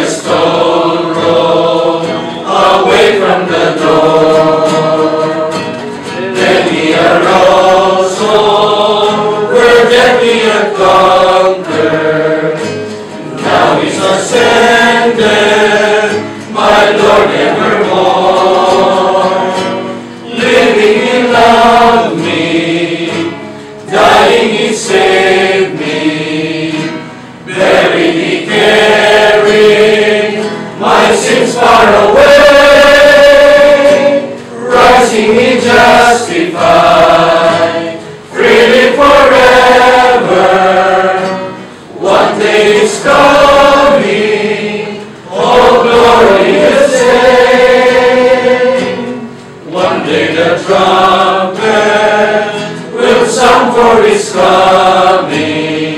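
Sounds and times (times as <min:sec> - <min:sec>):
group singing worship song: 0:00.0 - 0:55.9.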